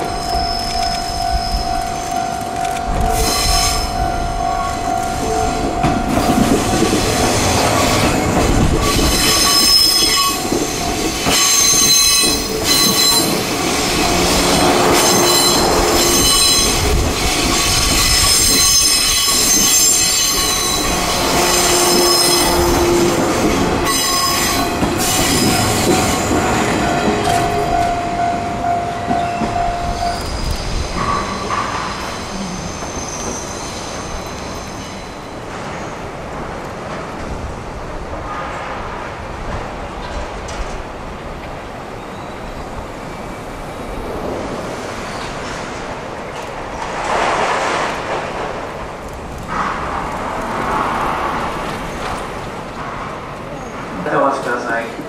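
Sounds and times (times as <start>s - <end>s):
train running on rails: 0.0s - 55.0s.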